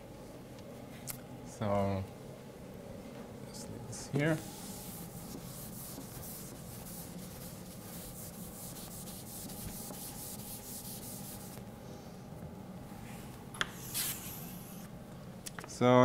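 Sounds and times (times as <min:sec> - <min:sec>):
eraser wiping chalkboard: 0:04.2 - 0:11.6, 0:13.8 - 0:14.8.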